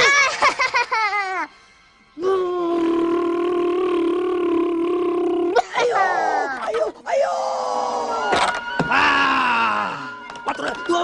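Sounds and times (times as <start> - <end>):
cartoon voice taunting cry: 2.6 - 7.9.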